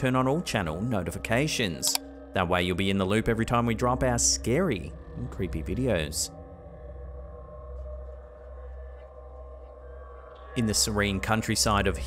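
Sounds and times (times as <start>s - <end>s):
ambient drone music: 0.0s - 12.0s.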